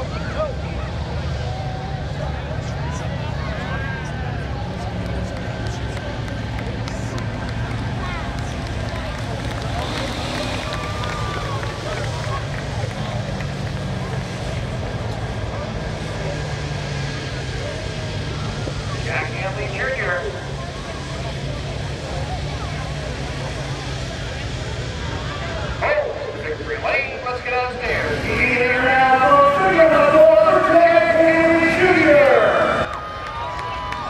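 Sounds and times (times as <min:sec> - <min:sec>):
crowd chatter: 0:00.0 - 0:34.0
race car engine running: 0:00.0 - 0:34.0.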